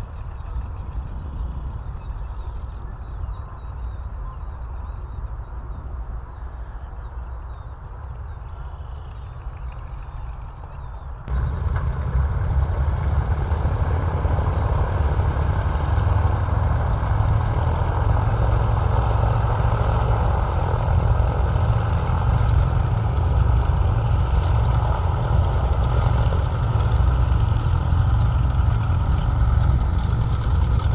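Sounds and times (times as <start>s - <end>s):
radial aircraft engines droning: 0.0s - 30.9s.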